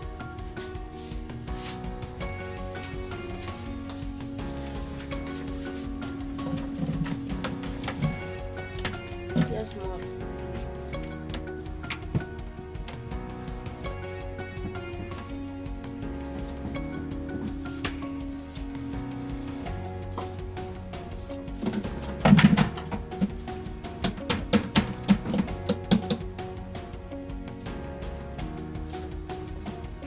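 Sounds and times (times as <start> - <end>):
background music: 0.0 - 30.0
plastic containers knocking on bucket: 21.6 - 23.4.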